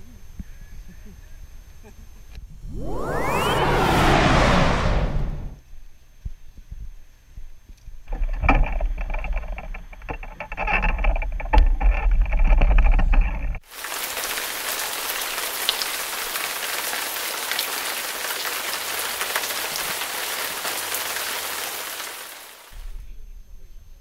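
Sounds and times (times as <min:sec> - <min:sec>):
steady rain hiss: 0:13.6 - 0:22.9.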